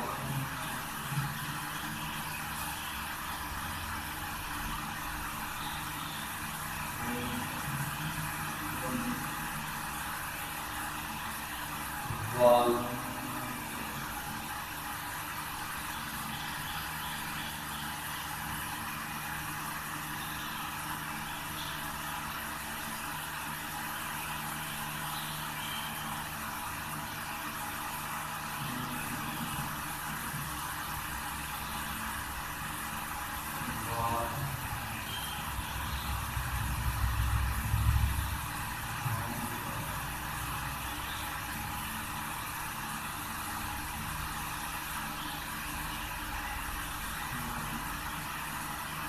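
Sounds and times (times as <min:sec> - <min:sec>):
mechanical hum and hiss: 0:00.0 - 0:49.0.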